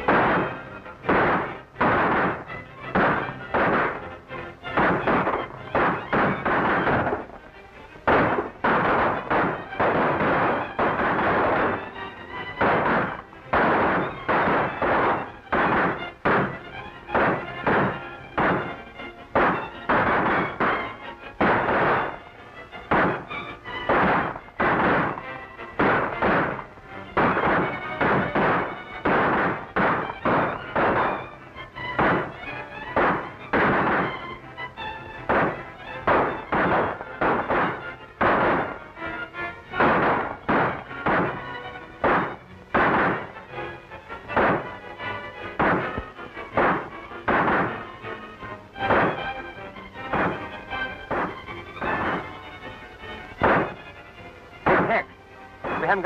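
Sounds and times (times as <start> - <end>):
film background music: 0.0 - 56.0
gunshots: 0.0 - 56.0.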